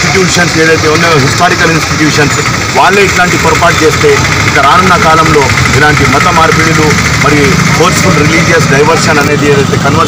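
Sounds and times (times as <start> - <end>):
man speaking into microphone: 0.0 - 10.0.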